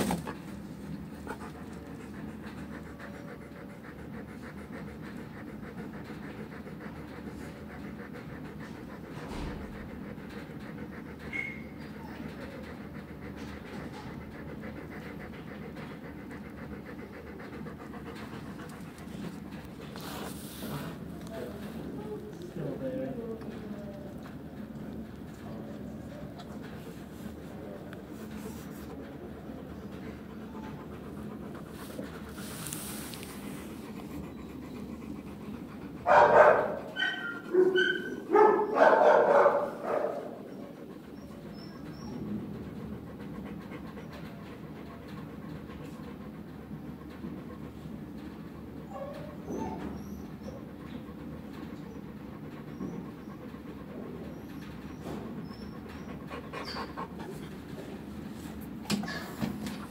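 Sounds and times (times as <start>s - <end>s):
dog barking: 36.0s - 40.4s.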